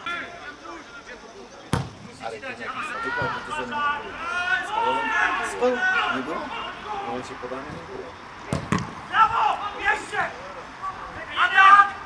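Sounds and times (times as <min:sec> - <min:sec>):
faint shouting voices: 0:00.0 - 0:12.0.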